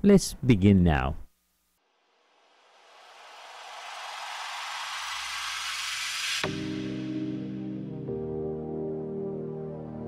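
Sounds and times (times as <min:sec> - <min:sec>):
hiss-like swoosh: 0:02.2 - 0:07.2.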